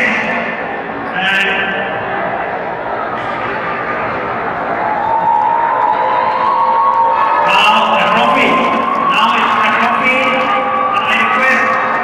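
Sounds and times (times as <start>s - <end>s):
raised voices in echoing hall: 0.0s - 12.0s.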